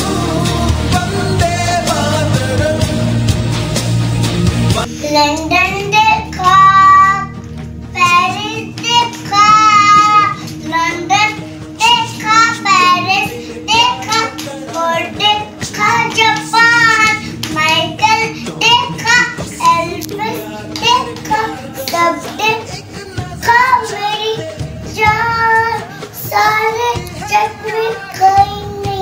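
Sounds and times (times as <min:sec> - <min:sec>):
boy singing solo: 0:08.0 - 0:29.0
boy breathing: 0:10.4 - 0:10.6, 0:11.4 - 0:11.8, 0:13.3 - 0:13.7, 0:17.2 - 0:17.4.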